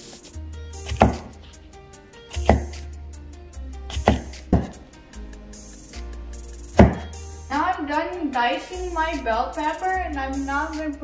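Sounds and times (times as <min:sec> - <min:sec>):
background music: 0:00.0 - 0:11.0
knife chopping on wooden board: 0:00.8 - 0:01.5, 0:02.3 - 0:02.8, 0:03.9 - 0:04.8, 0:06.8 - 0:07.2.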